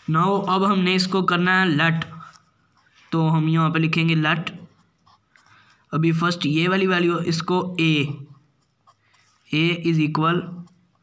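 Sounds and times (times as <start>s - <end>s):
marker writing on paper: 0.0s - 11.0s
person speaking: 0.0s - 11.0s.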